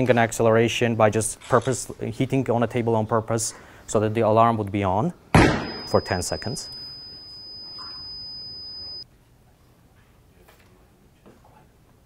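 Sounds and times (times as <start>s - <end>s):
alarm buzzer tone: 5.5s - 9.0s.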